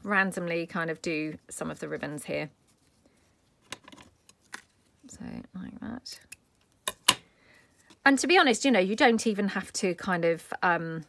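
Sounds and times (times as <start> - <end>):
ribbon rustling: 0.0 - 5.4.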